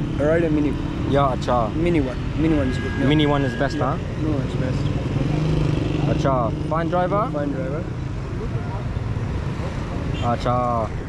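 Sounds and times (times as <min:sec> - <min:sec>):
passing car and motorcycle engines: 0:00.0 - 0:11.0.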